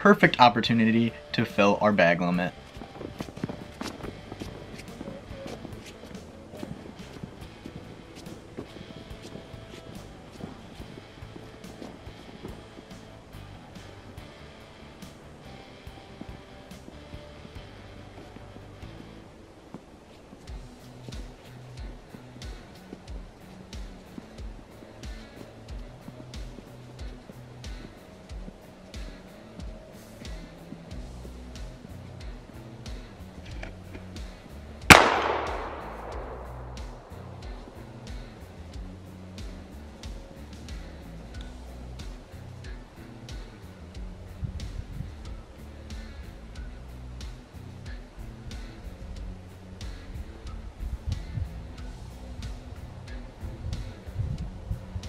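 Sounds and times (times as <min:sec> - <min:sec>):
background music with steady beat: 0:00.0 - 0:55.0
shotgun shot: 0:34.9 - 0:37.2.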